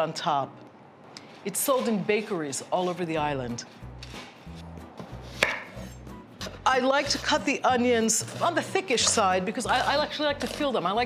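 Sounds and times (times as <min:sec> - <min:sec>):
knife slicing through onion: 0:03.8 - 0:11.0
knife blade knocking board: 0:05.4 - 0:05.8.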